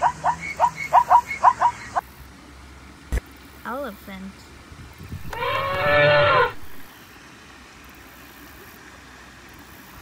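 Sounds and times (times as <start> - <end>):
elephant trumpeting: 5.2 - 6.7.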